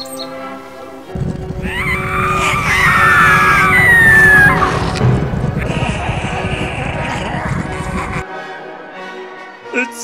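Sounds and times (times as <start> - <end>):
music: 0.0 - 10.0
low rumbling noise: 1.1 - 8.2
wavering scream falling in pitch: 1.6 - 5.0.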